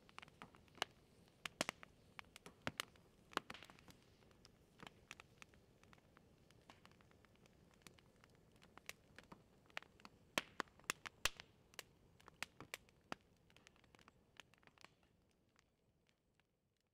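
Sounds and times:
campfire crackling: 0:00.0 - 0:16.6
fire popping: 0:00.0 - 0:16.6.

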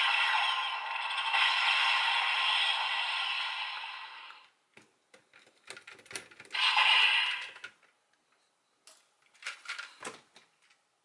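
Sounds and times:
electronic hissing from toy speaker: 0:00.0 - 0:04.4, 0:06.6 - 0:07.6.

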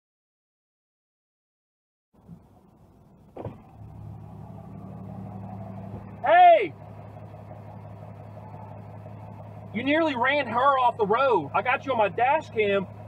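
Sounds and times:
car engine and road hum: 0:02.2 - 0:13.0
person shouting: 0:06.2 - 0:06.8.

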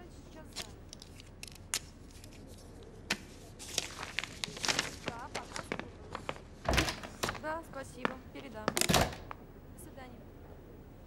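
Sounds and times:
paper rustling: 0:00.3 - 0:09.4.

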